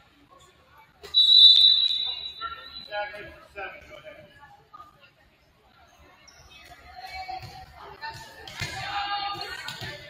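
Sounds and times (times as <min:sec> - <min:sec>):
referee's whistle blast: 0:01.1 - 0:02.9.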